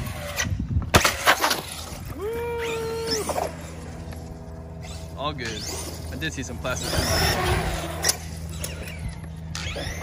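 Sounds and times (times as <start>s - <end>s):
electric motor whining: 0.0s - 10.0s.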